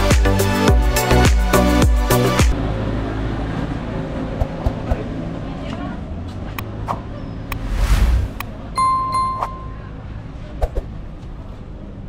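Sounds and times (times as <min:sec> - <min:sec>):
faint street ambience: 0:02.5 - 0:12.0
quick swoosh: 0:06.9 - 0:08.6
notification bell dinging: 0:08.8 - 0:10.0.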